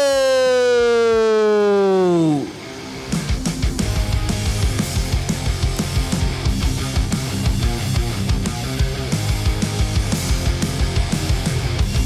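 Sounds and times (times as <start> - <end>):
announcer calling into a microphone: 0.0 - 2.6
drum-driven rock music: 2.0 - 12.0.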